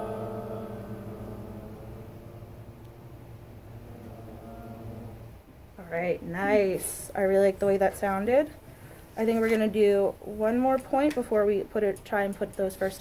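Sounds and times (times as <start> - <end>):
group singing a held chord: 0.0 - 5.3.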